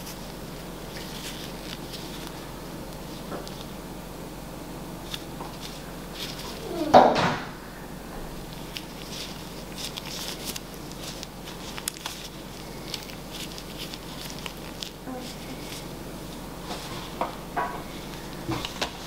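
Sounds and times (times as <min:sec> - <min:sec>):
gloved hands clicking and rustling: 0:00.0 - 0:03.8, 0:05.0 - 0:06.6, 0:08.5 - 0:19.0
low room hum: 0:00.0 - 0:19.0.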